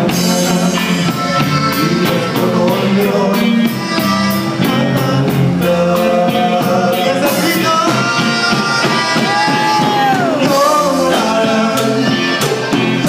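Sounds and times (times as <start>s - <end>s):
accordion melody: 0.0s - 13.0s
drums and bass beat: 0.0s - 13.0s.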